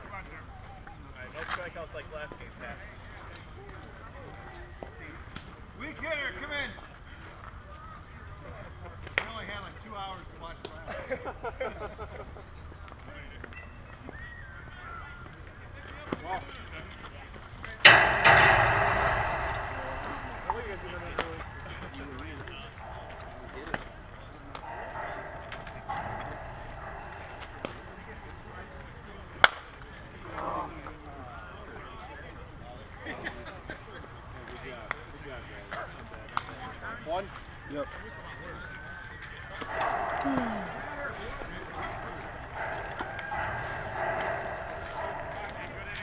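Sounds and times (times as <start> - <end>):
loud bang with rattling ring: 17.9 - 30.0, 39.6 - 46.0.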